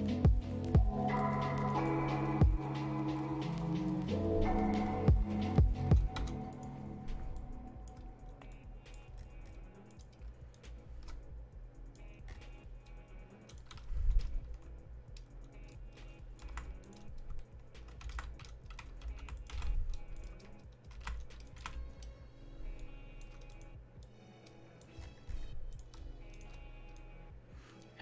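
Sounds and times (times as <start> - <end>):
quiet lo-fi beat: 0.0 - 28.0
computer keyboard clicks: 6.0 - 6.7, 13.4 - 14.6, 15.2 - 22.1, 23.3 - 23.7.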